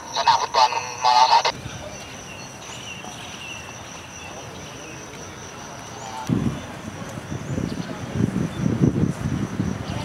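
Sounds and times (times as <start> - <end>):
person speaking: 0.0 - 1.5.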